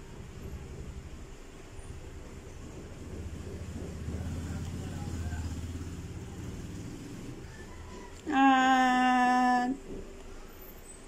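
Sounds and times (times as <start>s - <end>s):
passing road vehicle rumble: 0.0s - 8.4s.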